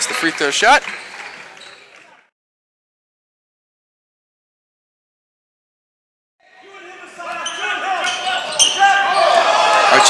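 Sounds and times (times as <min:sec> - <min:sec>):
voices in a large gym: 0:06.4 - 0:10.0.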